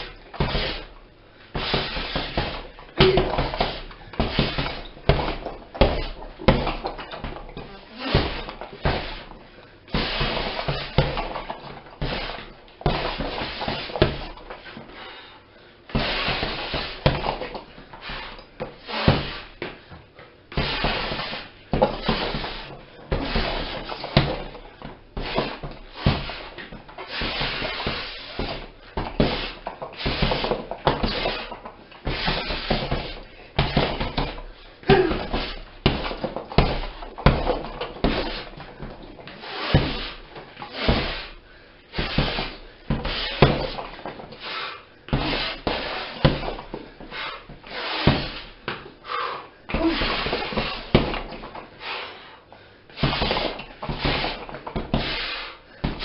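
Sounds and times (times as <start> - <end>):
punches thudding on heavy bag: 0.0 - 14.8, 15.9 - 19.8, 20.5 - 44.5, 45.1 - 49.0, 49.7 - 51.7, 52.9 - 56.0.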